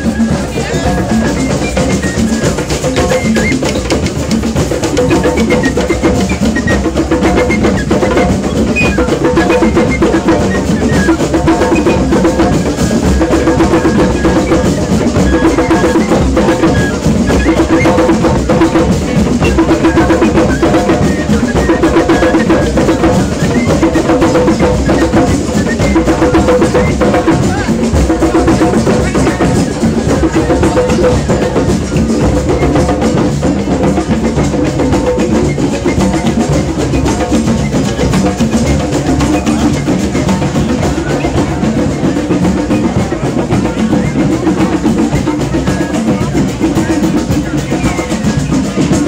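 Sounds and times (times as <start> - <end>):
hand drums playing: 0.0 - 49.0
wooden flute: 0.0 - 49.0.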